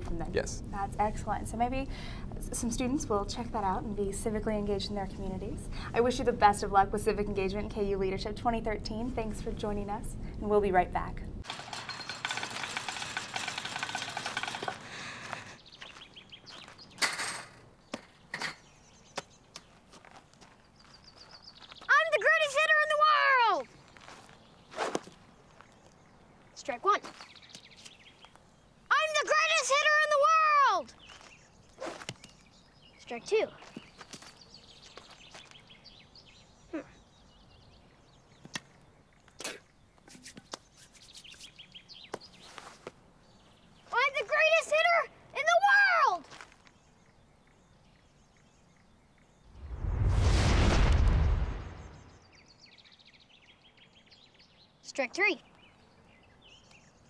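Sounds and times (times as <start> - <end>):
wire basket of balls rattling: 11.4 - 14.9
small birds chirping: 13.1 - 49.8, 51.3 - 57.0
footsteps on dirt: 14.7 - 17.0, 19.1 - 21.9, 23.6 - 26.0, 27.0 - 28.4, 30.9 - 32.6, 33.5 - 35.8, 46.2 - 46.8
scuffing rustle: 19.5 - 21.9, 23.8 - 25.9, 33.6 - 35.6, 42.1 - 43.0.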